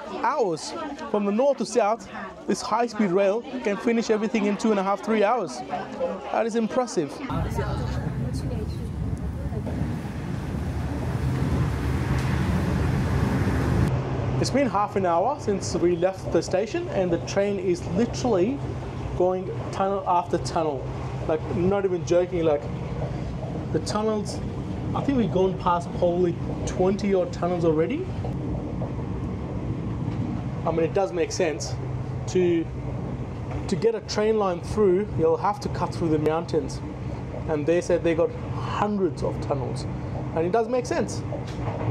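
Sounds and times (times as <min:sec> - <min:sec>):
train rumble inside carriage: 0:07.3 - 0:41.9.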